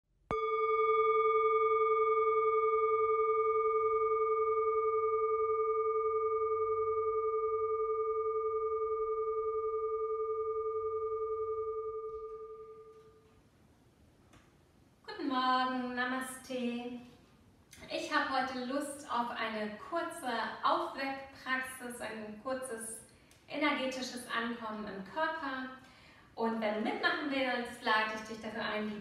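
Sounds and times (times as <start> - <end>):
singing bowl ringing: 0.3 - 13.2.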